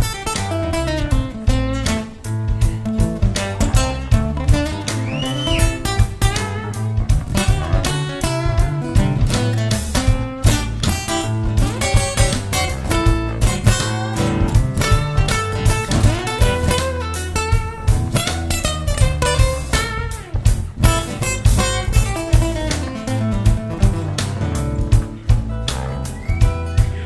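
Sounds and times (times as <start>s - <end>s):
acoustic guitar picked notes: 0.0s - 27.0s
drums: 0.0s - 27.0s
electric bass line: 0.0s - 27.0s.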